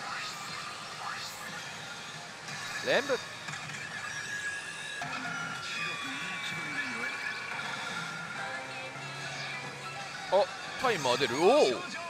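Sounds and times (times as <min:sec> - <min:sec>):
pachinko machine electronic music: 0:01.8 - 0:09.2, 0:10.1 - 0:11.9.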